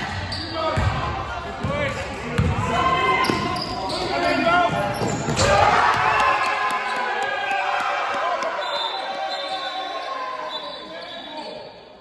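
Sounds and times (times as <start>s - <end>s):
voices in a sports hall: 0.0s - 12.0s
basketball bouncing on wooden court: 0.8s - 1.0s, 1.6s - 2.6s.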